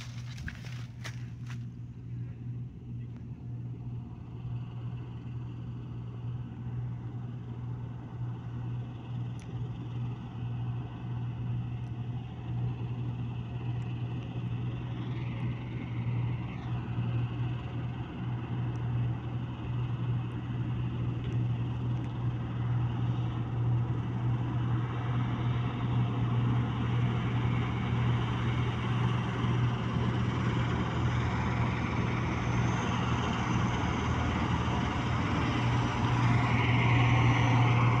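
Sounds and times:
threshing machine noise: 0.0s - 1.7s
combine harvester engine drone: 0.0s - 38.0s.

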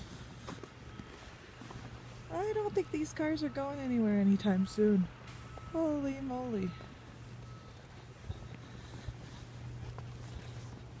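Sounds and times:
engine humming: 0.0s - 11.0s
footsteps crunching in snow: 0.0s - 11.0s.

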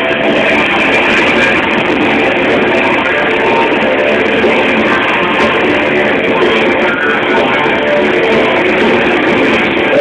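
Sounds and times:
loud rock band playing: 0.0s - 10.0s.

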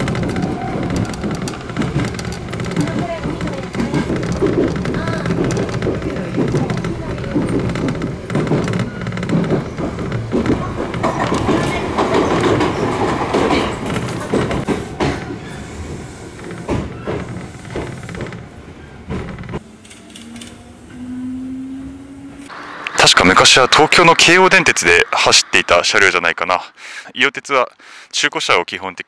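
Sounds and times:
train wheels clattering over rail joints: 0.0s - 20.6s
rising train motor whine: 0.0s - 26.2s
train car rattling: 0.0s - 26.2s.

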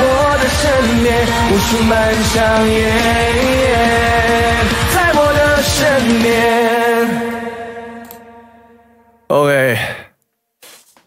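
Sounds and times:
song backing track: 0.0s - 9.2s
man sighing: 9.4s - 10.2s.

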